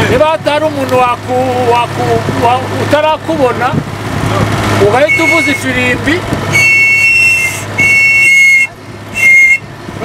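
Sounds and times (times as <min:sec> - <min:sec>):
safety whistle blasts: 0:05.1 - 0:05.7, 0:06.6 - 0:09.7.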